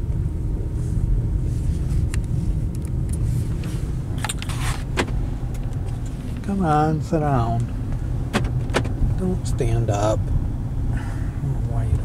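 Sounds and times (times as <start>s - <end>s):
car engine rumble: 0.0s - 12.0s.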